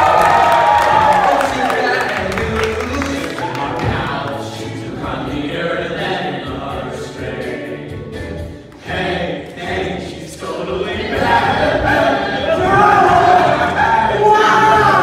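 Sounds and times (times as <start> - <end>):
boys singing together: 0.0 - 15.0.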